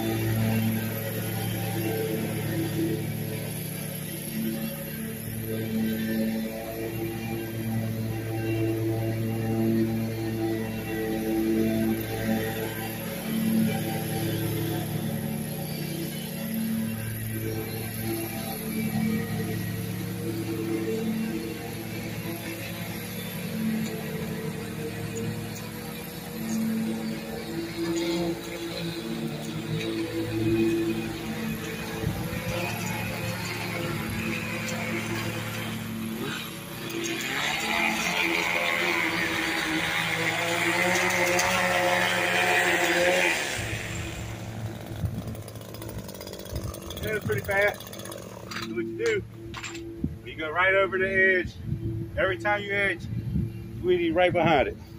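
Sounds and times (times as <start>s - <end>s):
power edger cutting concrete edge: 0.0s - 49.8s
background music: 0.0s - 54.9s.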